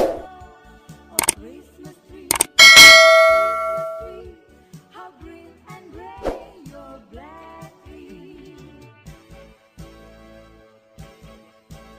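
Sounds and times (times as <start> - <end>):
mouse clicks: 2.3 - 2.6
bright bell ding: 2.3 - 4.2
faint background music: 4.1 - 11.9.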